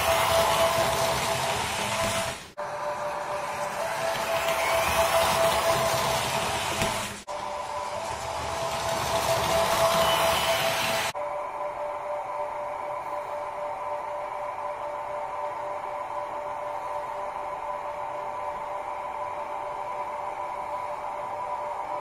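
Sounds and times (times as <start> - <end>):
model train electric whine: 0.0 - 22.0.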